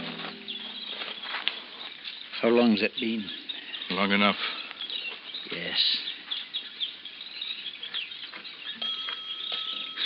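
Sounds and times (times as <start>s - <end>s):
high chirps and squeaks: 0.0s - 10.0s.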